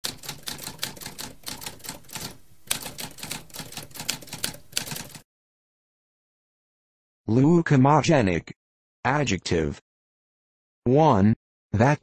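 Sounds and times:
typewriter keystroke clacks: 0:00.0 - 0:05.2.

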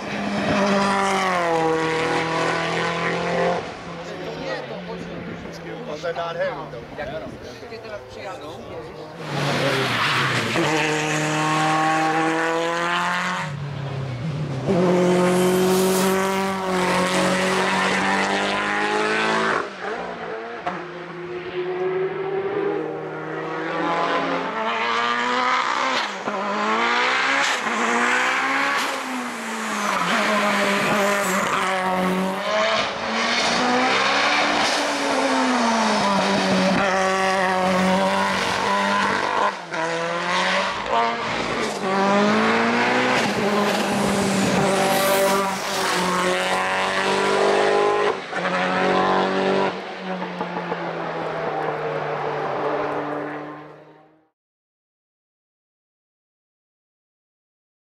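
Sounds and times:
race car engine revving: 0:00.0 - 0:54.1.

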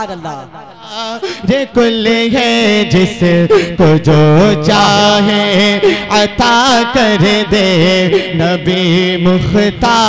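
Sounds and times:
man singing through pa with echo: 0:00.0 - 0:10.0.

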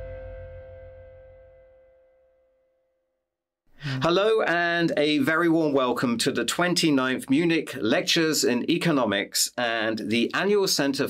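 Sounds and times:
man breathing in: 0:03.7 - 0:04.0
man speaking: 0:03.8 - 0:11.0.

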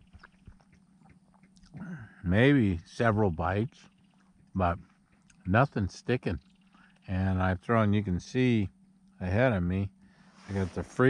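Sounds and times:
low steady hum: 0:00.0 - 0:11.0
man talking: 0:01.8 - 0:03.8, 0:04.6 - 0:04.8, 0:05.5 - 0:06.4, 0:07.1 - 0:09.9, 0:10.5 - 0:11.0.

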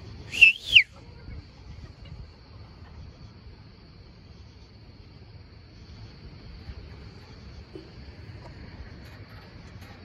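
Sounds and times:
whistle blasts: 0:00.3 - 0:00.9.

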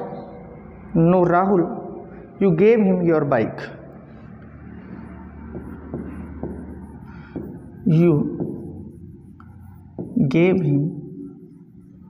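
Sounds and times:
low hum: 0:00.0 - 0:12.0
pen writing on screen: 0:04.8 - 0:12.0
man speaking: 0:07.9 - 0:08.4, 0:10.2 - 0:11.1.

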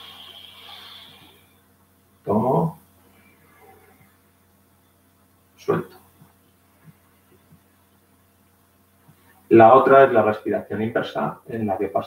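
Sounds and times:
man exhaling: 0:00.0 - 0:01.4.

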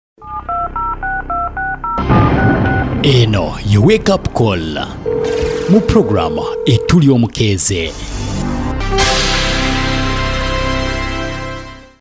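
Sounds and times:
telephone keypad beeps: 0:00.2 - 0:02.9, 0:05.1 - 0:07.1.

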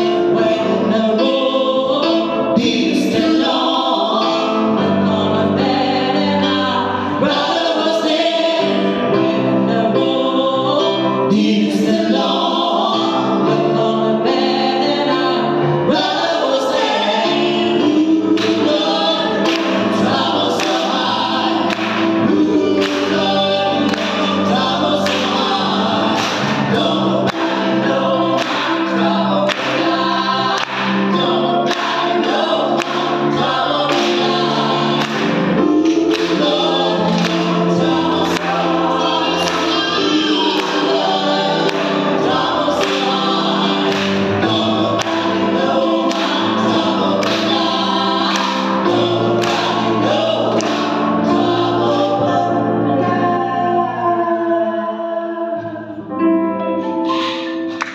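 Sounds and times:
gospel trio singing in harmony: 0:00.0 - 0:57.9.

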